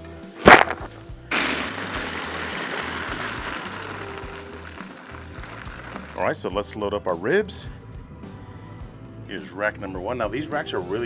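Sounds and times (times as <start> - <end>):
background music: 0.0 - 11.0
pellets pouring into hopper: 0.4 - 6.5.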